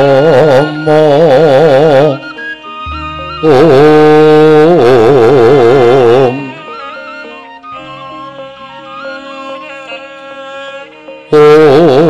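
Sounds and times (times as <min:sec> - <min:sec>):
long held note with vibrato: 0:00.0 - 0:10.6
gamelan music: 0:00.0 - 0:11.4.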